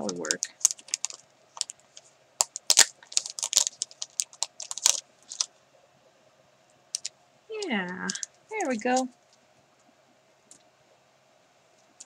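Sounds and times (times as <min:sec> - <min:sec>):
foil stickers crackling: 0:00.0 - 0:05.5.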